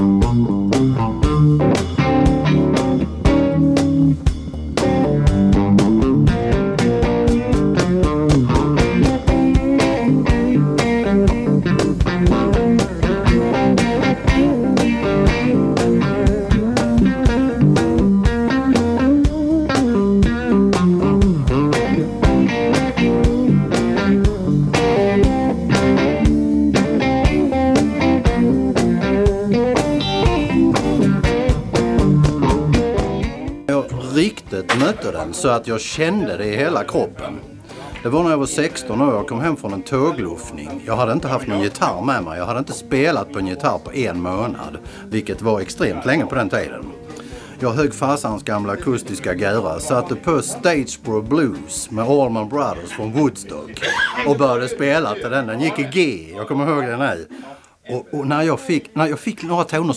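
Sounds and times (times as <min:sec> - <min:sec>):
electric guitar: 0:00.0 - 0:35.4, 0:45.9 - 0:47.7
drums keeping a steady beat: 0:00.0 - 0:54.4.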